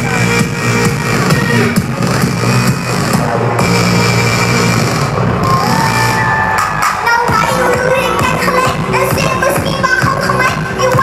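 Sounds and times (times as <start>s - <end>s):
loud electronic music with beat: 0.0s - 11.0s.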